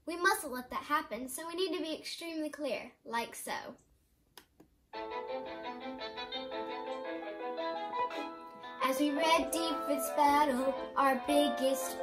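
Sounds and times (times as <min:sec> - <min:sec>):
musical theatre backing track: 0:05.0 - 0:12.0.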